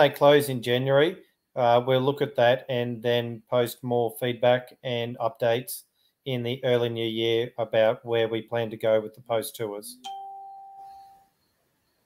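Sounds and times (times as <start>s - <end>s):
chime of pure tones: 10.0s - 12.0s.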